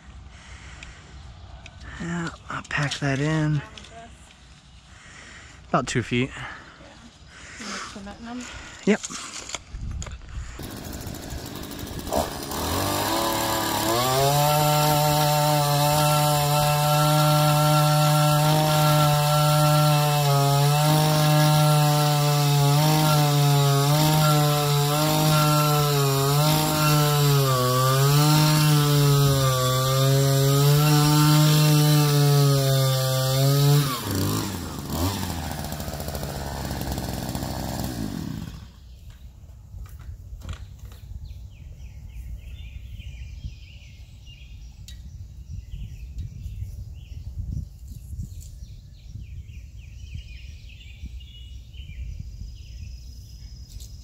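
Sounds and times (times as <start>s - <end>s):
two-stroke auger engine drilling: 10.6s - 38.8s.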